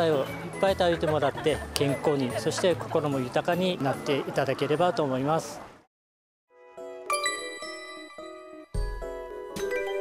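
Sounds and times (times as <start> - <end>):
held chord tones: 7.0 - 9.4
bell-like chime: 7.1 - 10.0.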